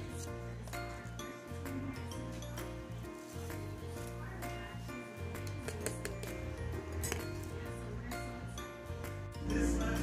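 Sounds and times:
background music with sustained tones: 0.0s - 10.0s.

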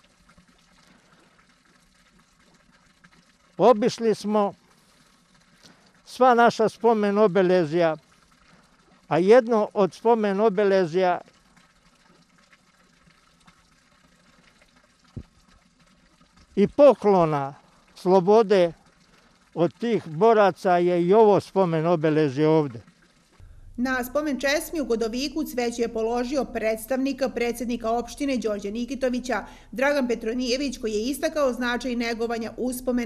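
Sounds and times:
faint trickle of running water: 0.0s - 33.0s
low hum: 23.4s - 33.0s.

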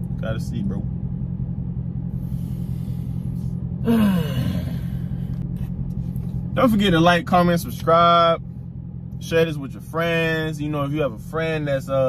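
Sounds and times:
low car cabin rumble: 0.0s - 12.0s
man breathing in: 2.1s - 5.3s
man sighing: 3.8s - 5.3s.

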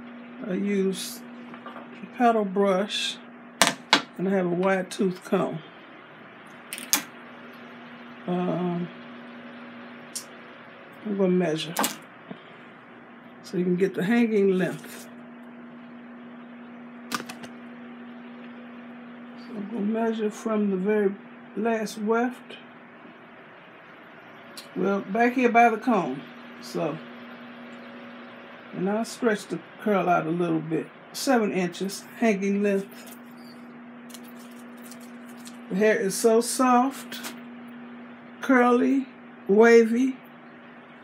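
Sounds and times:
low steady hum: 0.0s - 41.0s
tape measure rustling and ticking: 34.1s - 35.6s.

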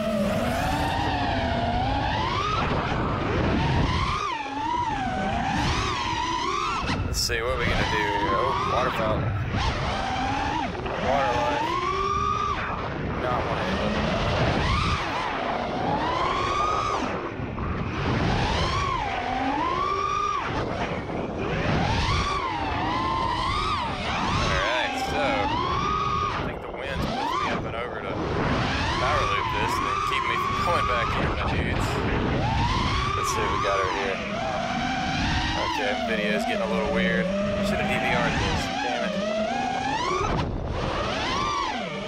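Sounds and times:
drone motors whining: 0.0s - 42.0s
low wind rumble: 0.0s - 42.0s.

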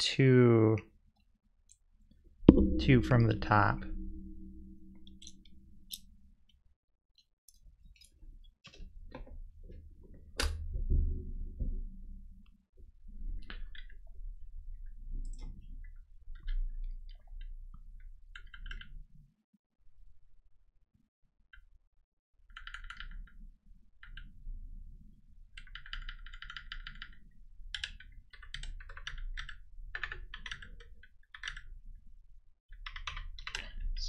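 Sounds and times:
typing on computer keyboard: 22.5s - 23.3s, 25.6s - 31.7s, 32.8s - 33.7s.

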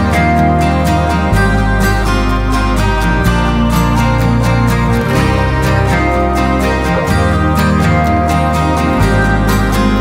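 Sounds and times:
guitar: 0.0s - 10.0s
held bass notes: 0.0s - 10.0s.

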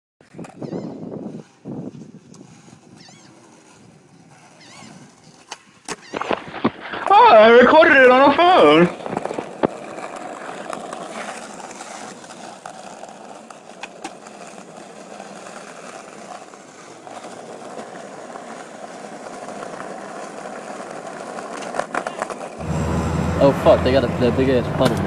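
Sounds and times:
skateboard clacks: 0.2s - 22.6s
skateboard wheels rolling on concrete: 0.2s - 25.0s.

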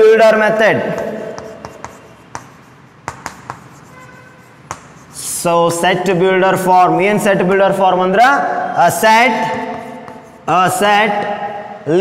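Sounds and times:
chalk tapping on blackboard: 0.8s - 5.4s, 9.3s - 10.8s.

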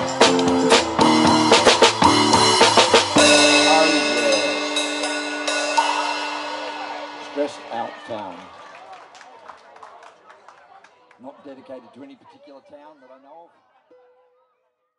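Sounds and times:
drum kit hits: 0.0s - 8.6s
band final chord ringing: 1.1s - 8.9s.

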